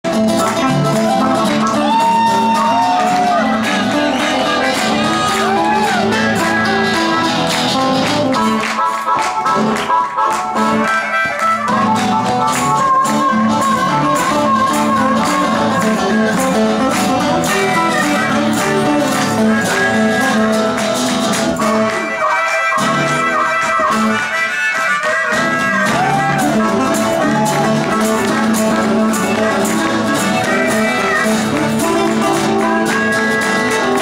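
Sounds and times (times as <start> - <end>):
electric guitar: 0.0 - 34.0
drums: 0.1 - 22.0, 25.6 - 34.0
harmonica: 0.1 - 34.0.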